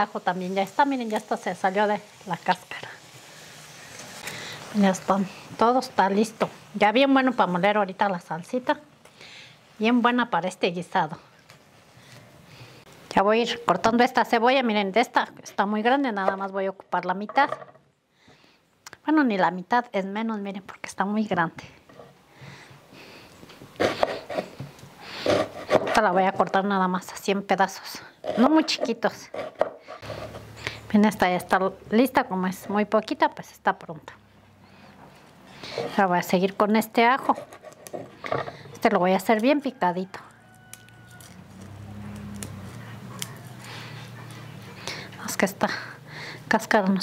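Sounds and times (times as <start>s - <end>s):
knife cutting onion: 23.8s - 26.2s, 37.0s - 38.1s
garlic skin crackling: 38.8s - 44.6s.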